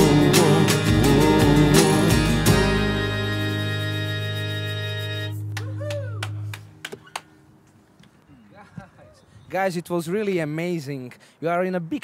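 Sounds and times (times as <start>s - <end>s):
guitar and keyboard chord ringing: 0.0s - 5.6s.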